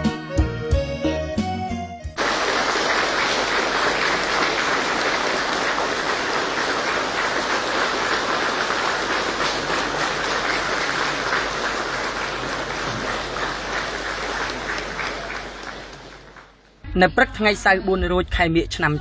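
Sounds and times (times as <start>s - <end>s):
large audience applauding: 2.2s - 16.8s.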